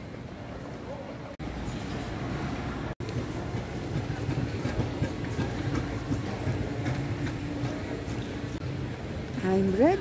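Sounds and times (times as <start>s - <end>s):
indistinct crowd: 0.0s - 10.0s.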